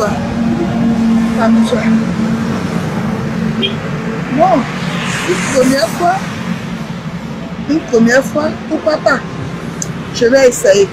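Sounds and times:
motorcycle passing: 0.0s - 8.7s
road traffic: 0.0s - 10.9s.

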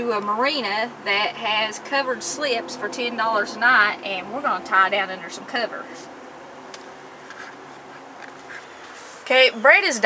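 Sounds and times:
low steady background noise: 0.0s - 10.0s
faint short bird calls: 8.4s - 9.6s.

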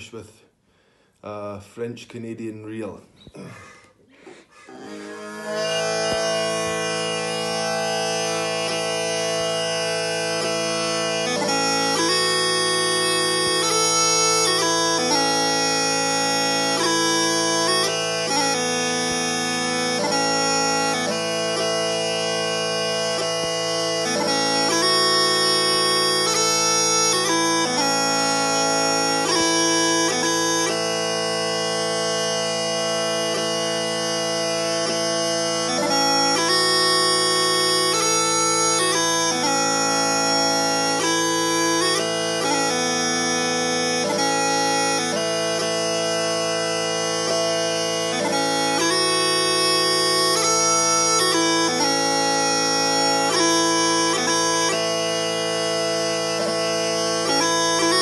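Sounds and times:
steady bagpipe drone: 4.4s - 58.0s
smallpipes waltz melody: 4.7s - 58.0s.

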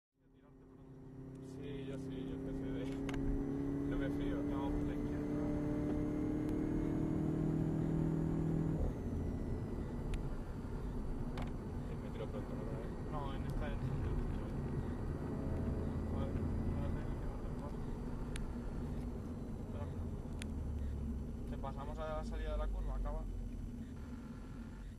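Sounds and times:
road noise: 0.2s - 24.9s
car engine accelerating: 0.3s - 24.9s.

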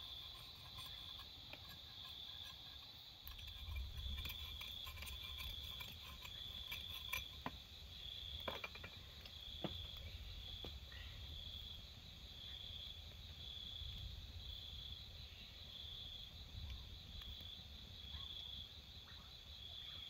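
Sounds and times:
crickets trilling: 0.0s - 20.0s.

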